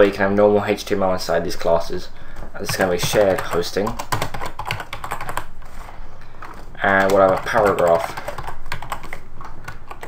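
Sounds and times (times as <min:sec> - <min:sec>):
keyboard typing: 0:02.6 - 0:05.5, 0:06.4 - 0:10.0.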